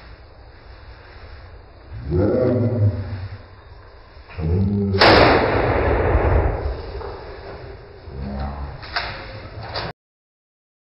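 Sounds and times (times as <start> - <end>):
handgun shot: 5.0 - 7.1.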